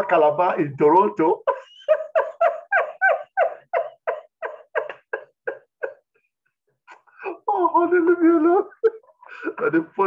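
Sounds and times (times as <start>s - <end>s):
man laughing heartily: 1.4s - 6.2s.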